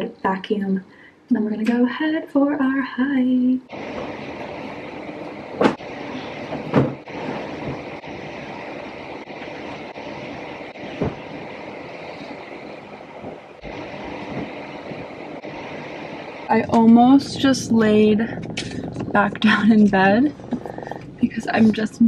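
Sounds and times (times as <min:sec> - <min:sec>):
bedding rustling: 0:03.7 - 0:20.9.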